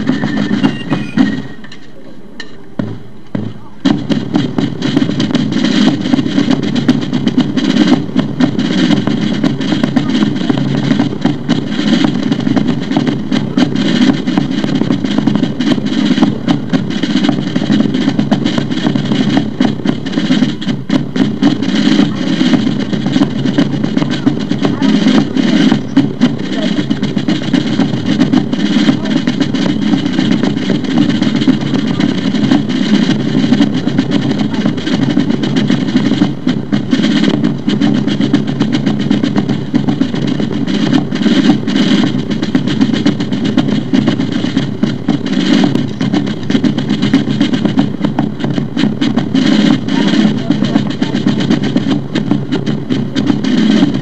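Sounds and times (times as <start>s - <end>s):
fifes playing: 0.0s - 54.0s
snare drumming: 0.0s - 54.0s.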